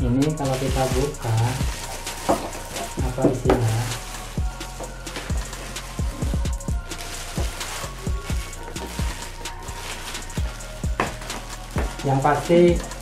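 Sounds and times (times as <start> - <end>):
background music: 0.0 - 13.0
plastic wrapping crinkling: 0.0 - 13.0.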